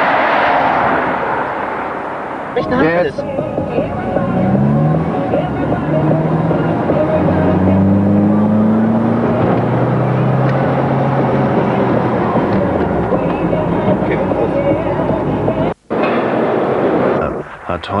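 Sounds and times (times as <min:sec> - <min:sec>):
car engine revving: 0:00.0 - 0:17.7
road and wind noise: 0:00.0 - 0:18.0.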